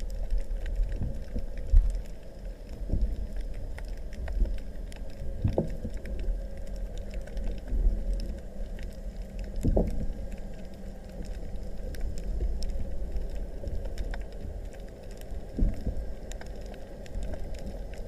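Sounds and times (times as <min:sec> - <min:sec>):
faint clicks: 0:00.0 - 0:18.0
underwater rumble of moving water: 0:00.0 - 0:18.0
water surges: 0:00.0 - 0:18.0.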